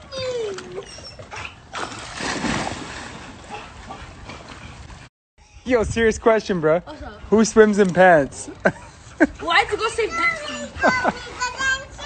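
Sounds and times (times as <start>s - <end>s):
water splashing: 1.7s - 5.1s.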